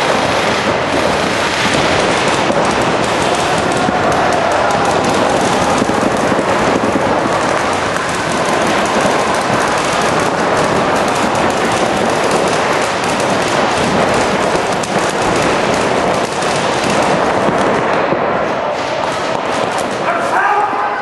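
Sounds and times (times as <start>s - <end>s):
paintball markers firing: 0.0s - 20.7s.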